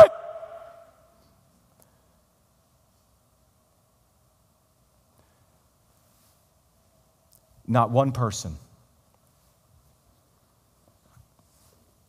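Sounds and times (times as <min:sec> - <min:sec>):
man speaking: 0:07.7 - 0:08.7.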